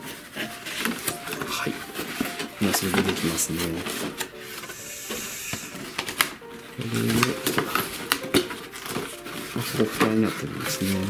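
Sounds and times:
cardboard rubbing and sliding: 0:00.0 - 0:11.0
cardboard click: 0:00.6 - 0:10.4.

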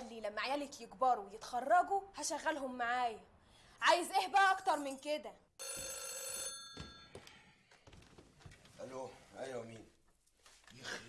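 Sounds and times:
desk telephone ringing: 0:05.6 - 0:07.2.

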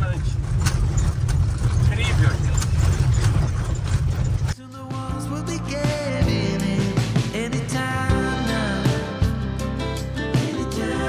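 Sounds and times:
vehicle road noise rumble: 0:00.0 - 0:04.6
small clicks and rattles: 0:00.3 - 0:04.6
music: 0:04.6 - 0:11.0.

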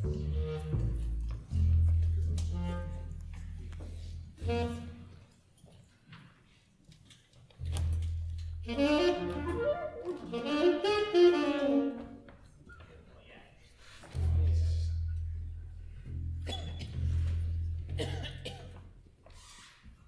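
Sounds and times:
saxophones playing phrases: 0:04.4 - 0:05.3, 0:08.6 - 0:12.3.

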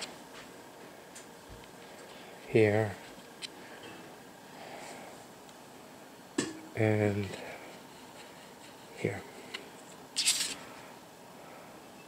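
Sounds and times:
paper rustling: 0:09.8 - 0:10.6.

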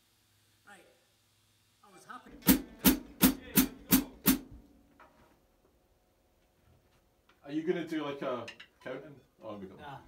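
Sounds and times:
drum kit strikes: 0:02.3 - 0:04.6.

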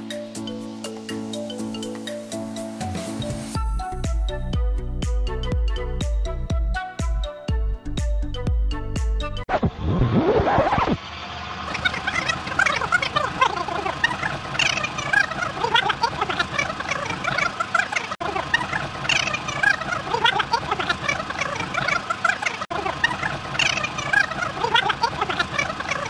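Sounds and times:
falling sweep: 0:09.5 - 0:11.0.

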